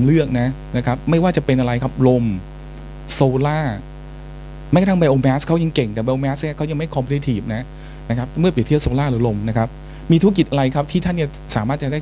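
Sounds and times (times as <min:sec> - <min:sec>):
person speaking: 0:00.0 - 0:02.5, 0:03.1 - 0:03.9, 0:04.7 - 0:12.0
electrical mains hum: 0:00.0 - 0:12.0.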